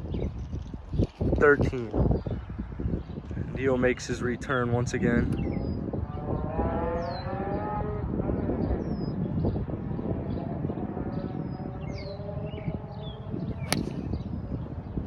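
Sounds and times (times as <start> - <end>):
birds chirping: 0.0 - 3.8, 5.1 - 7.4, 8.6 - 15.0
golf club striking ball: 13.6 - 14.2.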